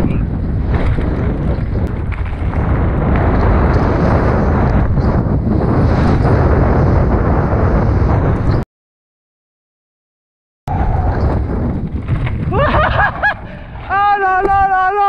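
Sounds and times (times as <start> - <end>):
mountain bike rumbling on trail: 0.0 - 8.6, 10.7 - 14.0
wind buffeting microphone: 0.0 - 8.6, 10.7 - 15.0.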